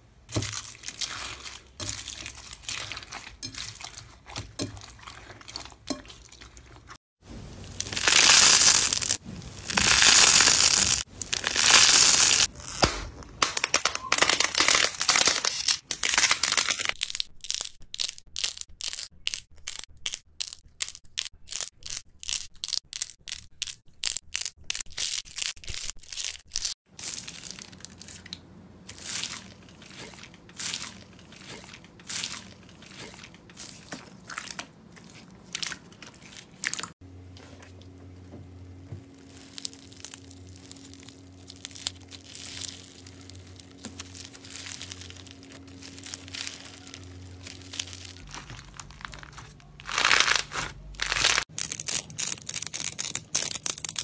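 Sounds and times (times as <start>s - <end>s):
foam slime squeezed by hand: 7.8s - 12.9s.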